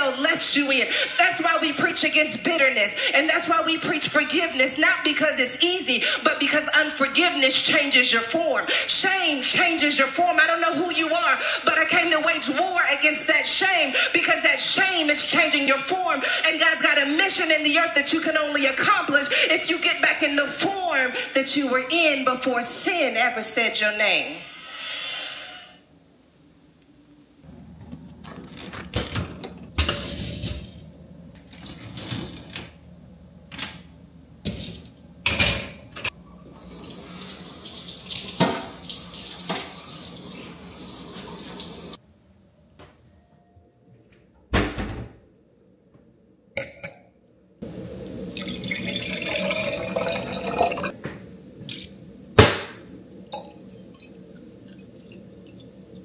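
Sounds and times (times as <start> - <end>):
dishwasher racks rattling on rollers: 28.3 - 30.8, 31.4 - 32.8
juice pouring into glass: 47.8 - 51.0, 53.3 - 56.0
liquid trickle: 48.0 - 51.0, 53.3 - 56.0.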